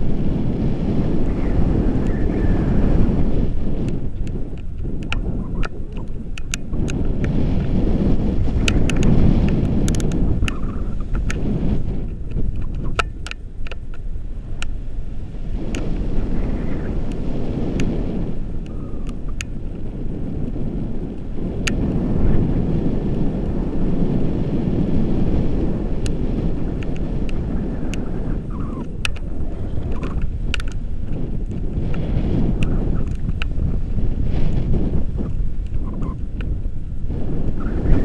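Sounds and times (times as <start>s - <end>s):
wind rumbling on microphone: 0.0s - 38.0s
sharp clicks: 3.8s - 7.4s, 8.6s - 11.4s, 12.0s - 14.0s, 26.8s - 32.0s.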